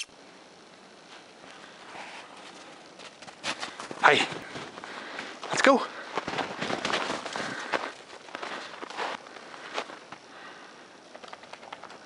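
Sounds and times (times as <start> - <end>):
footsteps crunching on snow: 1.1 - 10.3.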